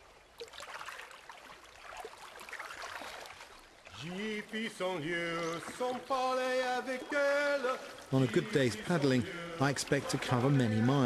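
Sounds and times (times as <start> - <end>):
paddle swishing through water: 0.0 - 10.9.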